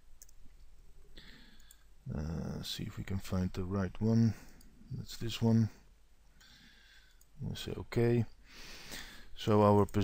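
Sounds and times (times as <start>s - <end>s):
keyboard and mouse clicks: 0.2s - 0.4s
soft breathy hiss: 0.9s - 3.0s, 4.0s - 9.8s.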